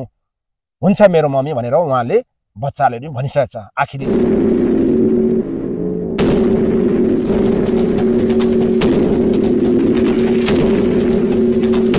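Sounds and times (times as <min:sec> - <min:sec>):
low synthetic drone: 0:04.0 - 0:11.9.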